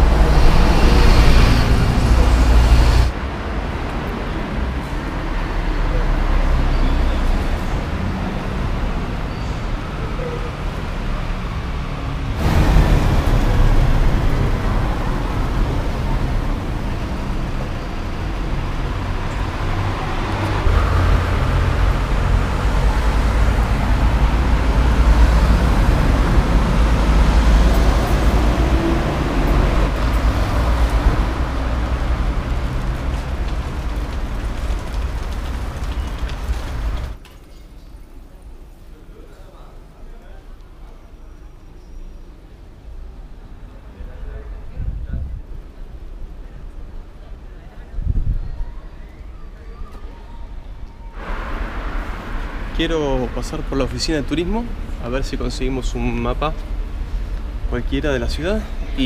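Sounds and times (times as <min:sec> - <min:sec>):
heavy low rumble: 0:00.0 - 0:03.2, 0:12.3 - 0:37.2
cars passing: 0:00.0 - 0:37.2, 0:50.5 - 0:59.0.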